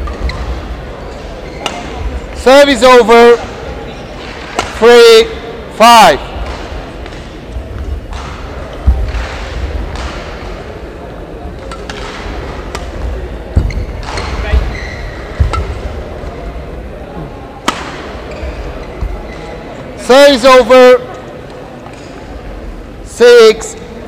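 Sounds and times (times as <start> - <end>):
hall background noise: 0.0 - 24.0
rackets hitting shuttlecock: 1.5 - 2.1, 4.2 - 4.8, 6.3 - 10.7, 11.5 - 16.4, 17.6 - 19.2.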